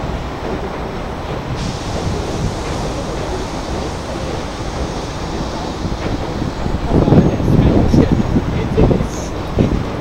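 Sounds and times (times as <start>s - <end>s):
distant city traffic: 0.0s - 10.0s
wind buffeting microphone: 0.0s - 10.0s
bright hiss: 1.6s - 7.5s.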